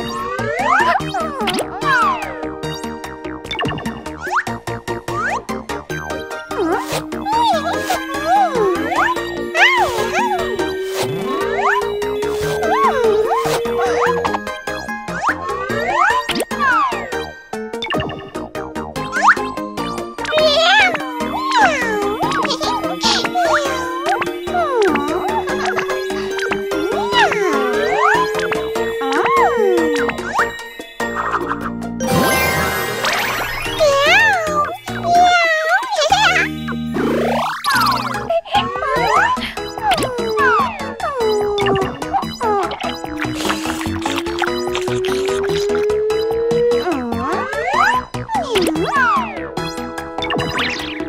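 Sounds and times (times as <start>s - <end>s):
cheerful children's game music: 0.0s - 51.0s
cartoon cat meows: 6.6s - 14.4s, 20.3s - 30.6s, 33.7s - 36.5s, 38.4s - 49.4s
tinkling chimes: 20.3s - 39.4s.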